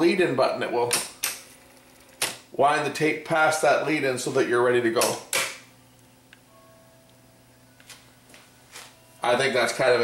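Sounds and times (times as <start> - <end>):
cassette deck running: 0.0 - 5.6.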